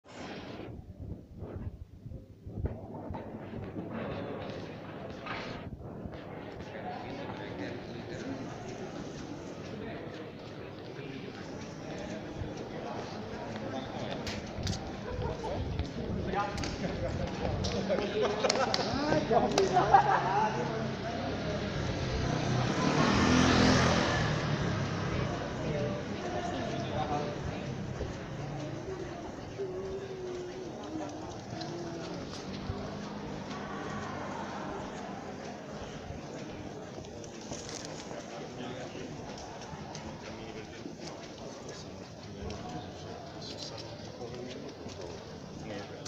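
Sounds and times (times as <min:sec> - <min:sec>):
indistinct voices of passers-by: 0:00.0 - 0:46.0
vehicle passing by: 0:20.5 - 0:28.9, 0:31.6 - 0:35.4.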